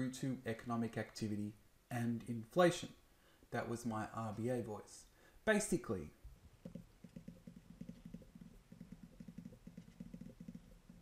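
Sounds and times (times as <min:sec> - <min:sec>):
stylus tapping on tablet screen: 0:06.6 - 0:11.0.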